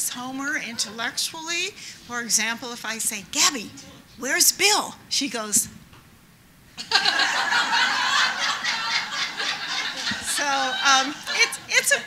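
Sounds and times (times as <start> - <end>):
audience laughing: 6.8 - 12.0.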